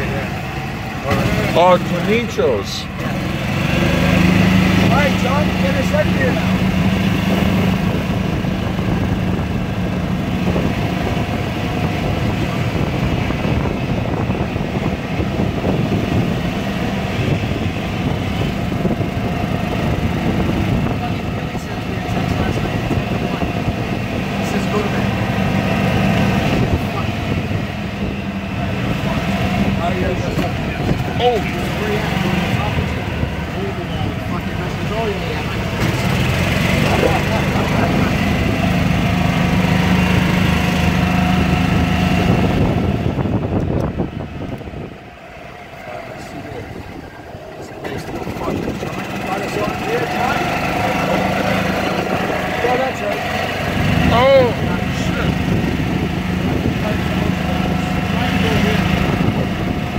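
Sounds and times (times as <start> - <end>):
road and wind noise: 0.0 - 59.9
small vehicle engine running: 0.0 - 59.9.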